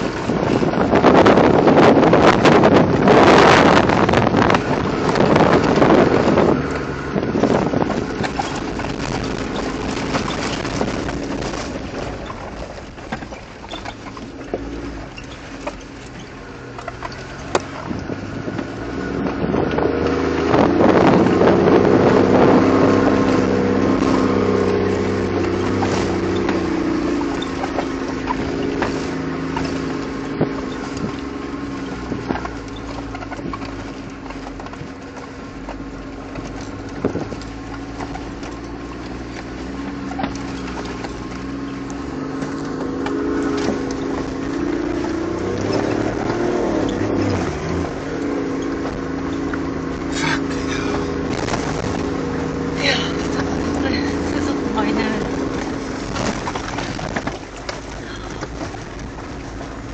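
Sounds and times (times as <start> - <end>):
knocks and rattles from bumps: 0.0 - 59.9
vehicle engine from inside cabin: 0.0 - 59.9.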